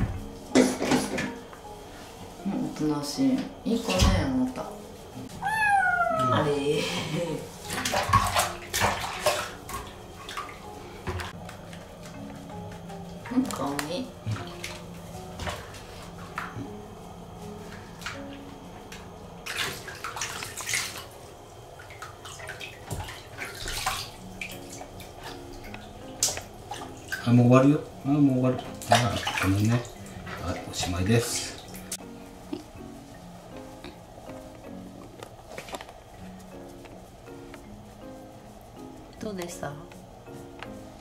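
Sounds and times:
hands rubbing wet fur: 0:04.7 - 0:07.7, 0:28.8 - 0:41.0
kitten meowing: 0:05.3 - 0:06.7
water splashing in basin: 0:07.6 - 0:10.6, 0:19.4 - 0:21.2, 0:21.8 - 0:27.8, 0:28.4 - 0:32.0.

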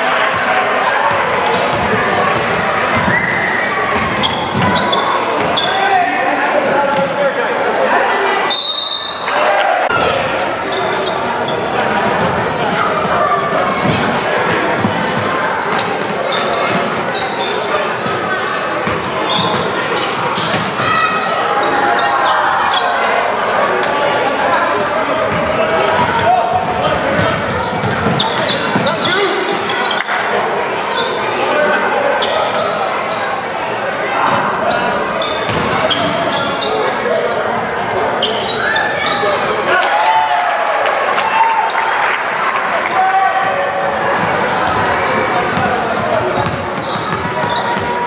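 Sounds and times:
people shouting and talking: 0:00.0 - 0:48.0.

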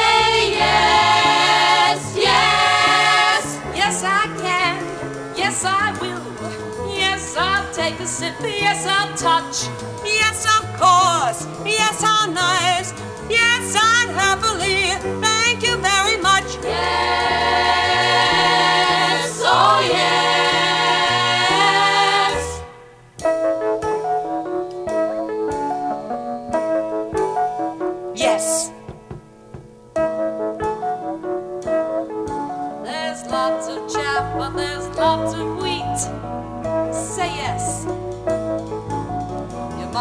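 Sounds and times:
women singing in close harmony: 0:00.0 - 0:04.8, 0:16.0 - 0:22.7, 0:32.9 - 0:36.1
jazz band: 0:00.0 - 0:40.0.

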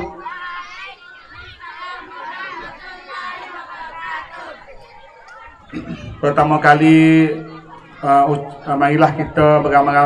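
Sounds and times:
voices answering together: 0:00.0 - 0:10.0
person speaking at microphone: 0:05.8 - 0:10.0.

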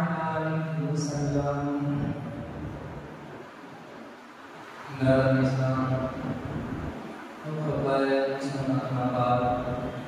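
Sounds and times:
man chanting: 0:00.0 - 0:02.9, 0:04.9 - 0:06.8, 0:07.4 - 0:10.0.

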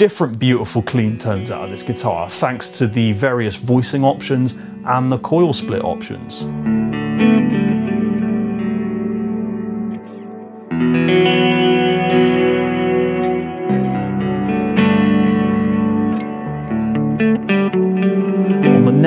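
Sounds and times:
clean electric guitar chords: 0:00.3 - 0:19.0.

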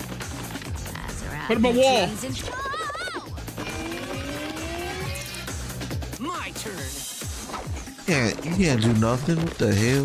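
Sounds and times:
music with thumping bass beat: 0:00.0 - 0:10.0
rising gliding tones effect: 0:03.6 - 0:05.4.

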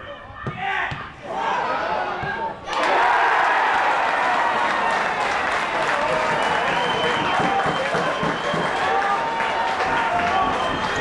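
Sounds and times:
crowd cheering and applauding: 0:02.7 - 0:11.0.

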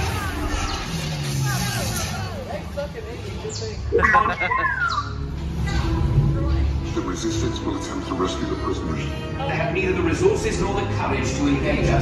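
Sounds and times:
warbling electronic chirps: 0:03.9 - 0:05.2
low rumble: 0:05.2 - 0:08.2.

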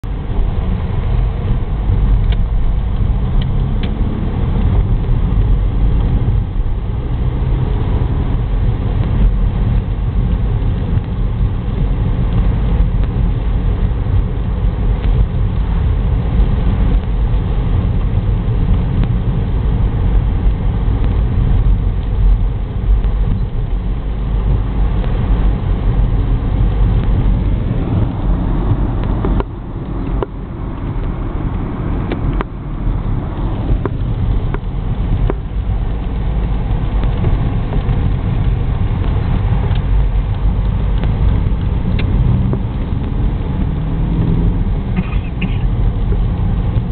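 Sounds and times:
car engine and tyres on wet road: 0:00.0 - 0:46.9.

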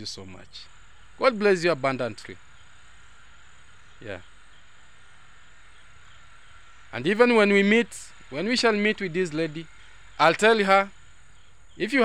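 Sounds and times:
insects chirping: 0:00.0 - 0:12.0.

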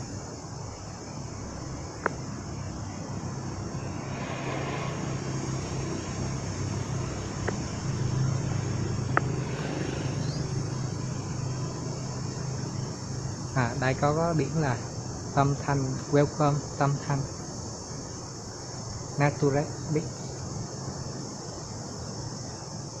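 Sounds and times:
low drone: 0:00.0 - 0:17.8
high insect buzz: 0:00.0 - 0:23.0.

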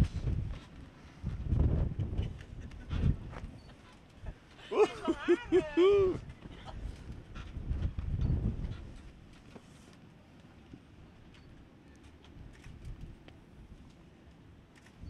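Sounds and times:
wind buffeting microphone: 0:00.0 - 0:09.4, 0:12.3 - 0:13.9.

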